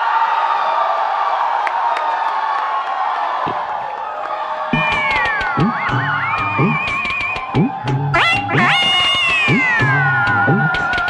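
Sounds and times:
high wailing sliding line: 0:04.7 - 0:11.0
live band music: 0:04.8 - 0:11.0.

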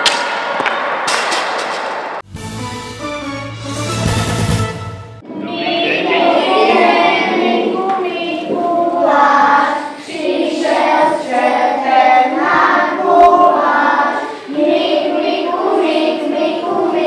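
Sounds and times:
children singing together: 0:05.2 - 0:17.0.

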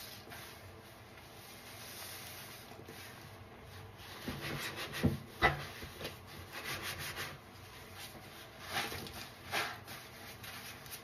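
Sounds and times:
sponge rubbing strokes: 0:00.0 - 0:11.0.

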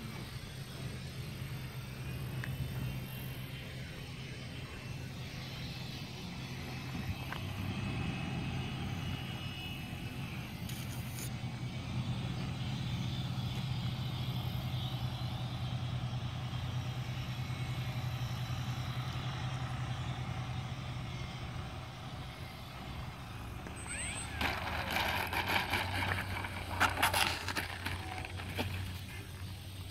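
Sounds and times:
low rumble of model plane: 0:00.0 - 0:29.9
rustling: 0:23.9 - 0:29.5.

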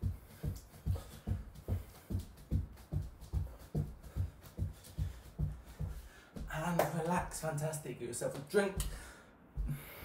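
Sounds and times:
feet thudding on wooden floor: 0:00.0 - 0:06.6, 0:08.8 - 0:10.0.

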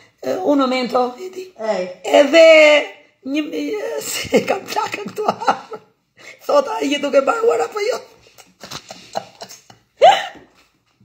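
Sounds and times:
woman laughing: 0:04.1 - 0:05.8, 0:08.2 - 0:10.7.

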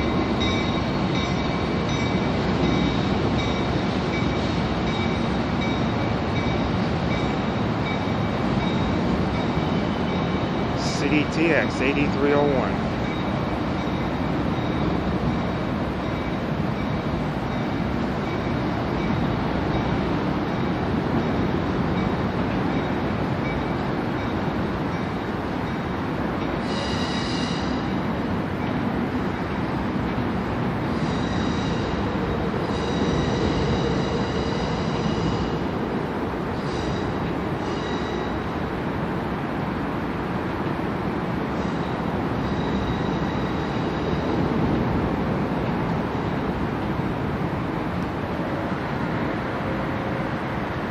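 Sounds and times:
train rumbling on tracks: 0:00.0 - 0:50.9.

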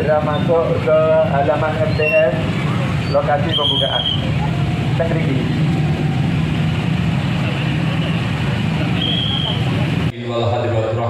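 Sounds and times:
motorcycle engines idling: 0:00.0 - 0:10.1
street crowd chatter: 0:00.0 - 0:11.0.

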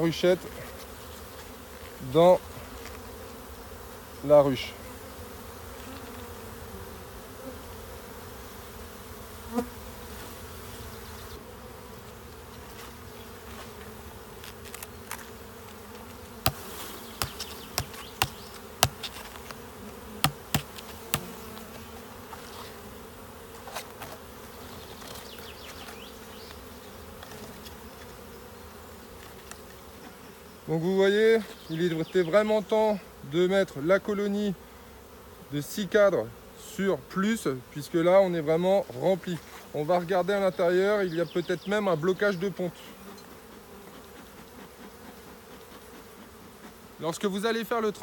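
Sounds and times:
honeybee colony buzzing: 0:00.0 - 0:48.0
wooden hive frames clicking: 0:14.4 - 0:21.7
sharp knock: 0:17.2 - 0:19.1, 0:20.2 - 0:21.3.

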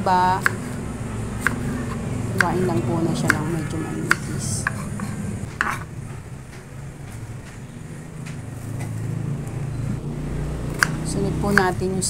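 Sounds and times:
low background hum: 0:00.0 - 0:12.0
knife cutting on cutting board: 0:01.4 - 0:05.9
knife tapping on board: 0:02.4 - 0:03.5, 0:04.1 - 0:05.8, 0:10.8 - 0:11.7.

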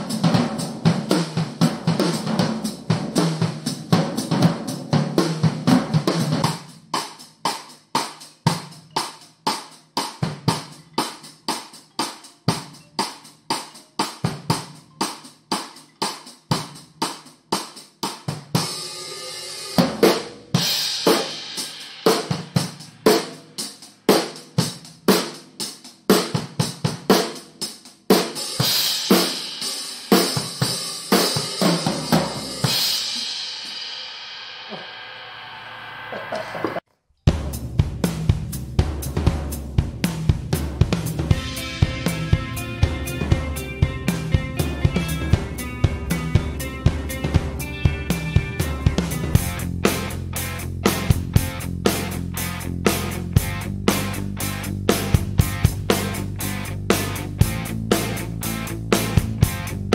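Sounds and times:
drum kit beat: 0:00.0 - 0:35.4, 0:36.0 - 0:59.9
ringing cymbal: 0:18.6 - 0:19.8
cymbal crashes: 0:18.6 - 0:24.3, 0:28.6 - 0:36.8, 0:41.3 - 0:48.6.

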